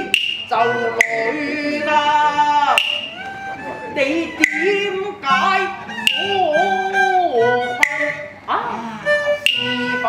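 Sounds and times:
sharp percussion strike: 0:00.0 - 0:01.3, 0:02.7 - 0:03.2, 0:06.0 - 0:06.6, 0:07.8 - 0:08.4
opera singing with wavering note: 0:00.0 - 0:10.0.

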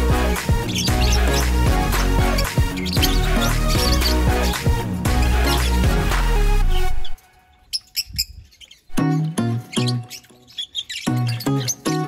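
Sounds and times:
background music with melody: 0:00.0 - 0:07.2, 0:08.9 - 0:12.0
small birds chirping: 0:00.0 - 0:12.0.

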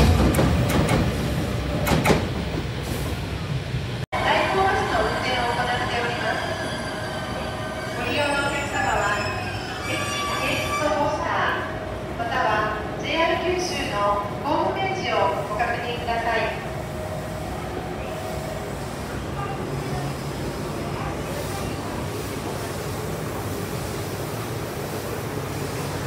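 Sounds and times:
electric train rumbling: 0:00.0 - 0:26.0
public address announcement: 0:04.2 - 0:22.8.

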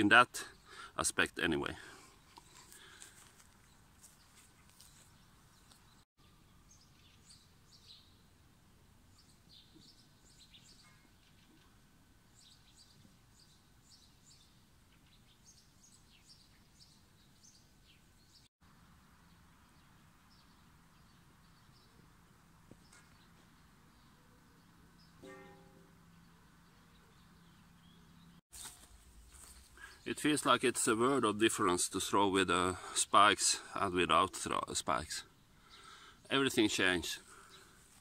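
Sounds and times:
faint birds chirping: 0:00.0 - 0:38.0.

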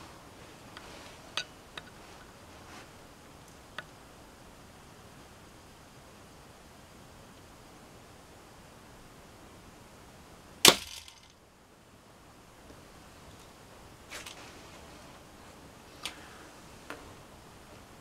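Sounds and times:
crossbow firing crack: 0:10.6 - 0:11.3.

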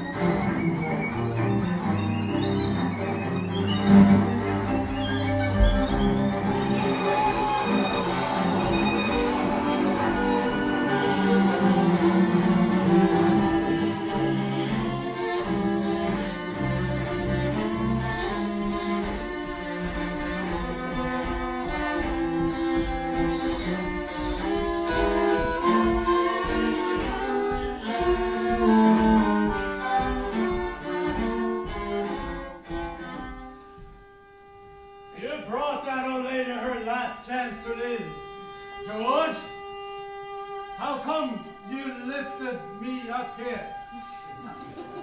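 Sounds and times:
bowed strings improvising: 0:00.0 - 0:45.0.

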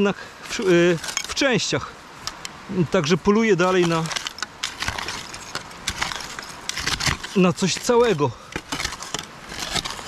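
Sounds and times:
digging tool scraping soil and glass: 0:00.0 - 0:01.8, 0:03.0 - 0:10.0.

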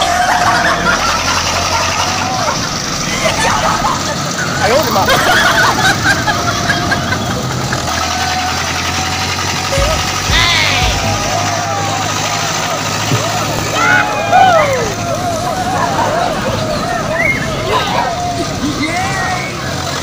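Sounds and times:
men shouting: 0:00.0 - 0:05.2, 0:07.8 - 0:19.9
engine droning: 0:00.0 - 0:20.0.

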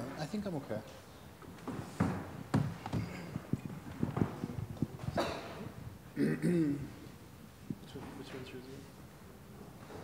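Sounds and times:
microphone and laptop handling knocks: 0:01.5 - 0:05.8.

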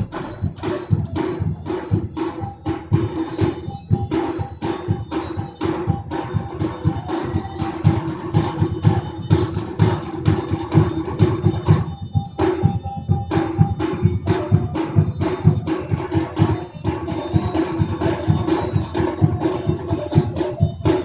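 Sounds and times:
drums: 0:00.0 - 0:21.0.

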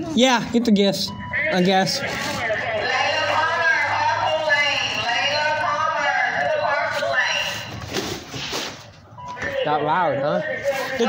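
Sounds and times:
people talking: 0:00.0 - 0:07.7, 0:09.3 - 0:11.0.

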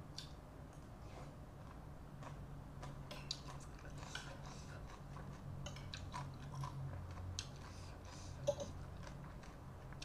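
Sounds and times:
chewing food: 0:00.2 - 0:10.0.

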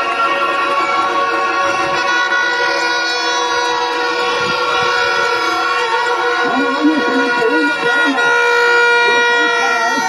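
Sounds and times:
crowd noise: 0:00.0 - 0:10.0
horns blaring: 0:00.0 - 0:10.0.

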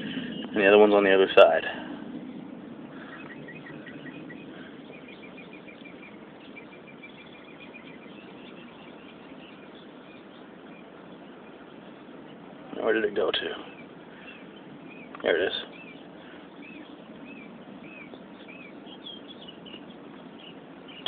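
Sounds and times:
outdoor background hiss: 0:00.0 - 0:21.0
bird chirping: 0:02.2 - 0:21.0.

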